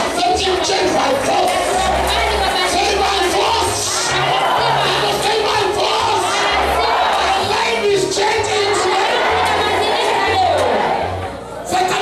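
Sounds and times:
congregation shouting and singing: 0.0s - 12.0s.

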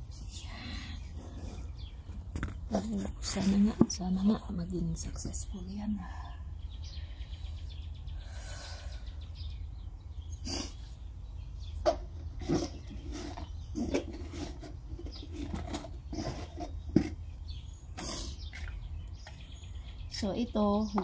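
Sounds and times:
plastic containers and bags rustling: 11.9s - 17.3s.

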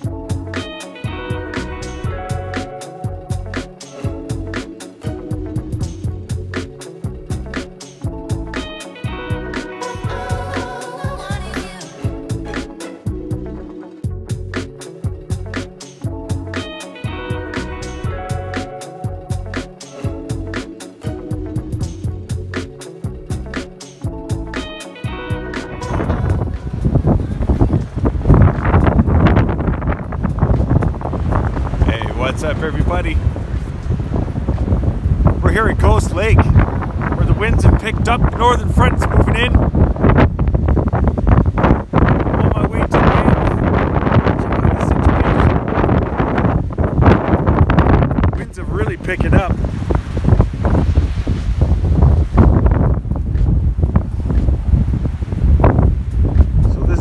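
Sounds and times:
background guitar music: 0.0s - 57.0s
wind buffeting microphone: 25.3s - 57.0s.

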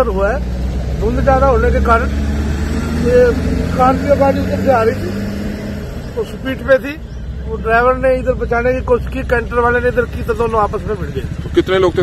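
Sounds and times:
low rumble of road traffic: 0.0s - 12.0s
man speaking: 2.9s - 5.2s, 6.2s - 12.0s.

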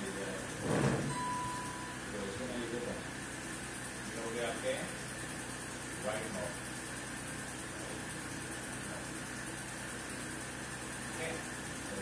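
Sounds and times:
electronic keyboard high note: 1.1s - 2.2s.

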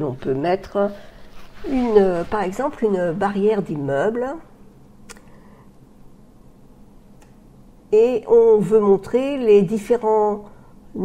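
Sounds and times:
woman speaking: 0.0s - 4.6s, 7.9s - 11.0s
faint background hiss: 0.0s - 11.0s.

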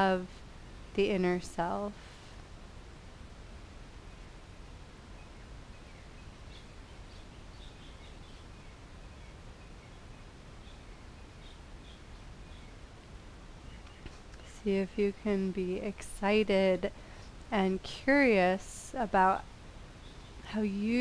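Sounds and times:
low hum and hiss: 0.0s - 21.0s
faint bird chirps: 5.0s - 12.9s, 13.6s - 14.6s, 19.9s - 20.6s.

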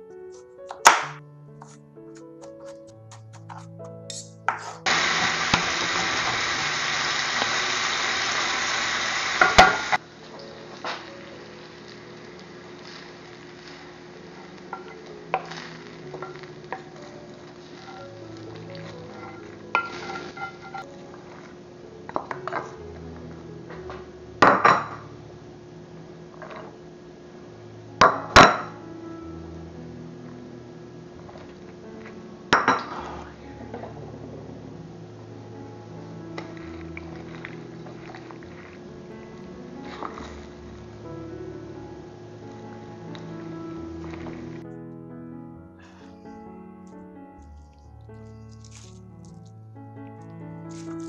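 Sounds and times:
sausage sizzling in skillet: 3.2s - 21.4s, 50.7s - 51.0s.

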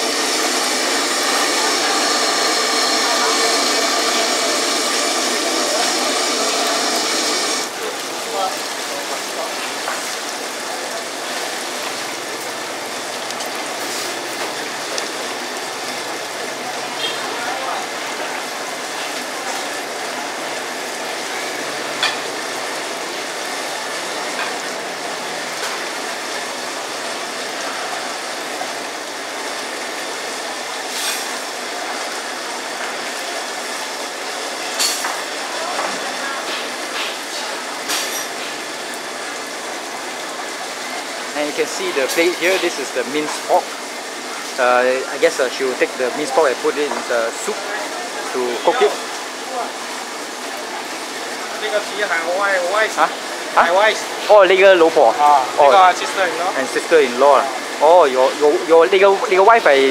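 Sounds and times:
dense crowd roar: 0.0s - 7.8s
background chatter: 0.0s - 59.9s.

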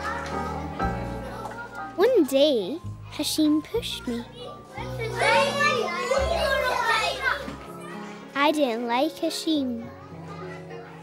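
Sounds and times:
soft background music: 0.0s - 11.0s
child's raised voice: 3.5s - 7.4s.

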